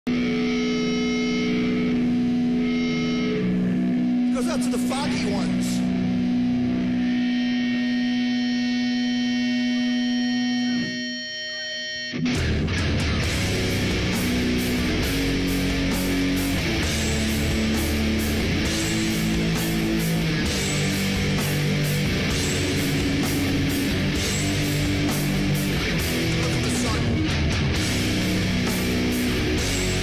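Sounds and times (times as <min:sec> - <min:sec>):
electric guitar chord ringing: 0:00.1 - 0:30.0
heavy metal band playing: 0:00.1 - 0:30.0.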